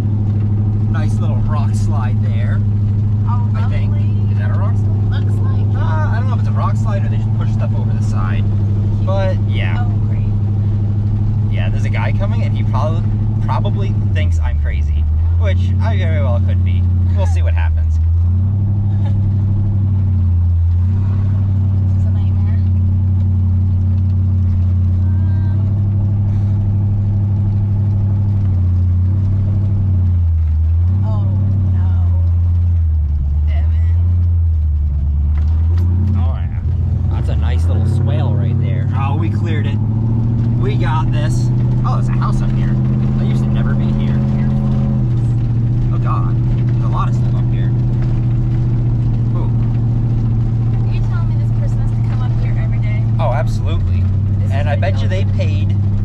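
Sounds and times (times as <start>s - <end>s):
car engine revving: 0.0s - 56.0s.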